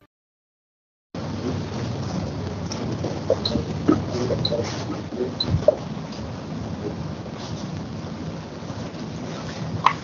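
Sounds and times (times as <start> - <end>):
loud steady rushing noise: 1.2 - 10.0.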